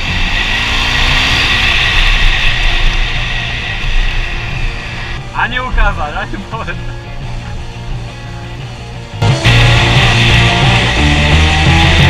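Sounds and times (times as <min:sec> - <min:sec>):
motorcycle engine: 0:00.0 - 0:05.8, 0:06.4 - 0:12.0.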